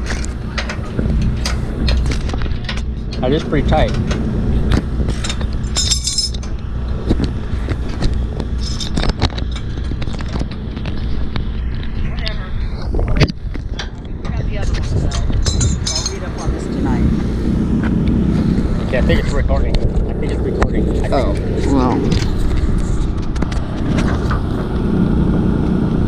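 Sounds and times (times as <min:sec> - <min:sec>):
steady low rumble: 0:00.0 - 0:26.0.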